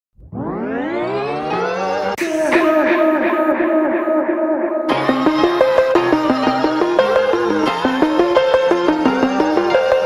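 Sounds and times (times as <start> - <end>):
intro music: 0.2 - 10.0
rising sweep tone: 0.2 - 10.0.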